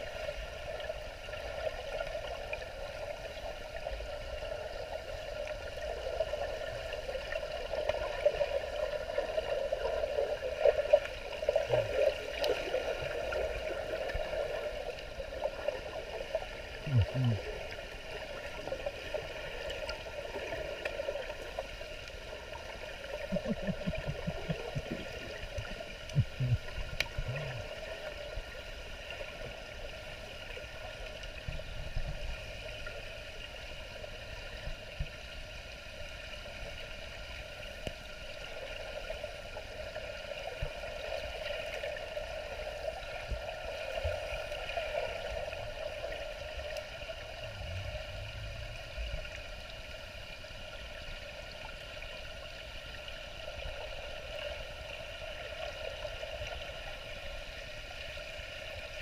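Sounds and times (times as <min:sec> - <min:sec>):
muffled underwater water noise: 0:00.0 - 0:59.0.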